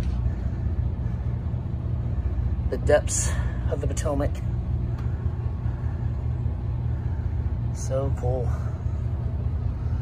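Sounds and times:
boat engines droning: 0.0s - 10.0s.

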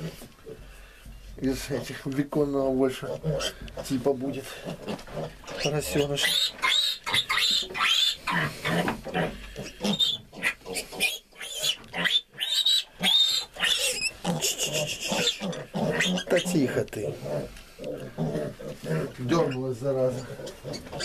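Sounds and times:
piglet squealing: 5.5s - 16.6s, 20.2s - 21.0s.

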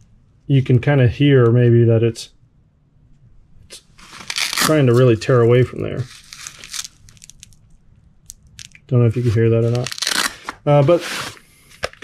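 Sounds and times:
cord and pouch creaking: 4.0s - 5.0s, 5.9s - 8.9s, 9.6s - 10.6s.

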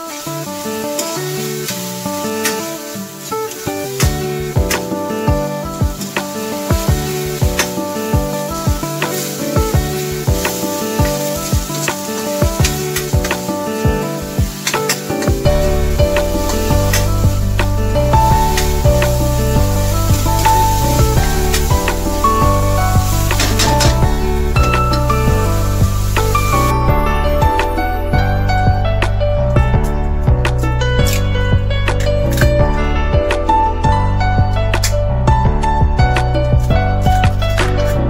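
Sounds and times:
vegetables sizzling in oil: 0.0s - 28.6s
background music with bass line: 0.0s - 38.0s
spatula stirring in wok: 6.0s - 26.4s.

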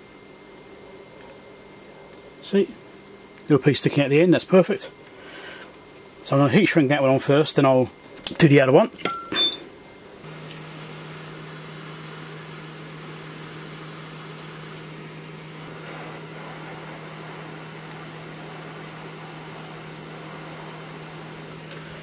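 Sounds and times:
heat gun humming: 10.2s - 22.0s.

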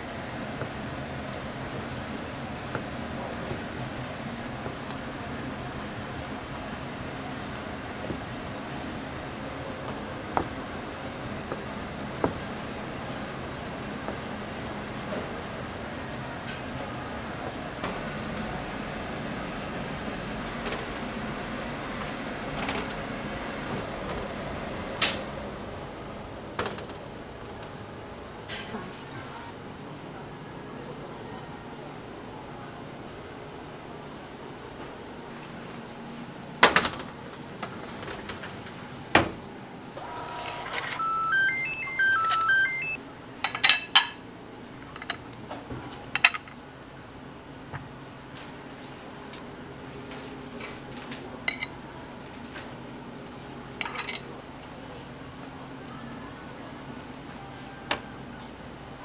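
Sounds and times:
kitchen ventilation hum: 0.0s - 59.0s
electronic alert chime: 41.0s - 43.0s.

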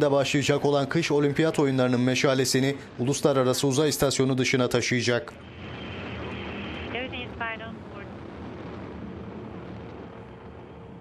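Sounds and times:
rocket engines roaring: 0.0s - 11.0s
voice fragments: 6.8s - 8.1s.

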